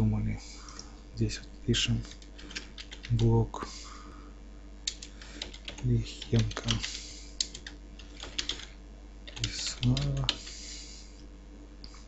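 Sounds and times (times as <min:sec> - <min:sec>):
typing on computer keyboard: 0:02.2 - 0:03.2, 0:04.9 - 0:08.7, 0:09.3 - 0:10.5.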